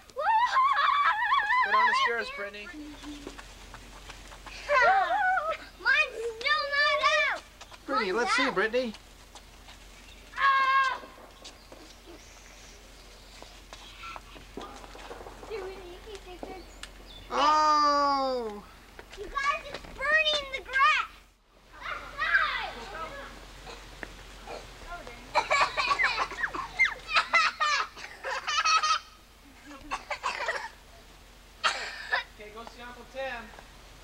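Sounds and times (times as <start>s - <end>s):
children crying out: 0.1s - 2.6s, 10.3s - 11.2s, 17.3s - 18.7s, 21.7s - 29.2s
children squealing: 0.2s - 3.4s, 10.3s - 12.6s, 21.8s - 23.3s, 25.4s - 29.2s
children chattering: 0.5s - 9.0s, 9.9s - 32.4s.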